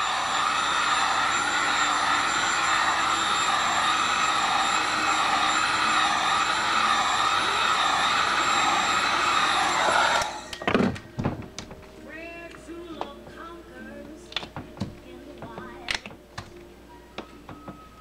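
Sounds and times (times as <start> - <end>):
heat gun blowing air: 0.0 - 10.6.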